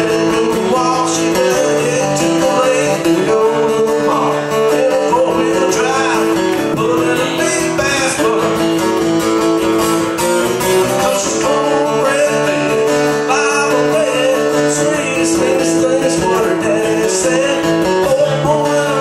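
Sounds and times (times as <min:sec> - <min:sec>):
man singing: 0:00.0 - 0:09.4, 0:10.5 - 0:19.0
acoustic guitar strummed and picked: 0:00.0 - 0:19.0.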